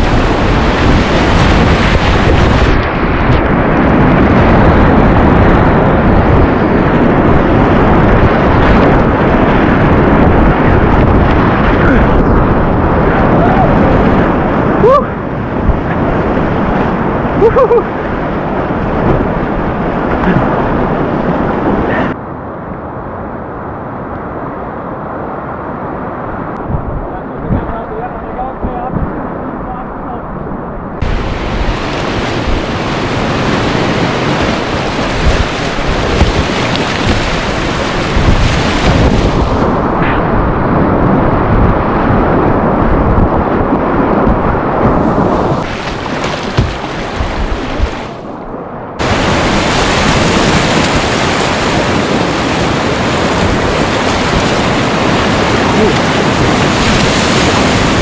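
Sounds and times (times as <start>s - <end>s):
whitewater rushing and splashing: 0.0s - 22.2s, 31.0s - 58.0s
paddle strokes in water: 31.0s - 39.7s, 44.2s - 48.3s, 49.0s - 58.0s.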